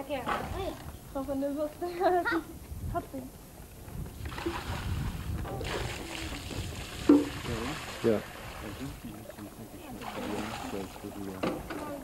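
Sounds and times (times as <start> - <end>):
water poured from bucket splashing: 4.2 - 11.4.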